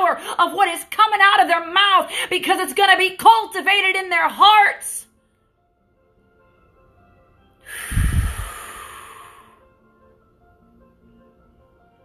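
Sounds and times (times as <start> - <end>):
soft background music: 0.0 - 12.0
breath blown into microphone: 7.6 - 9.7.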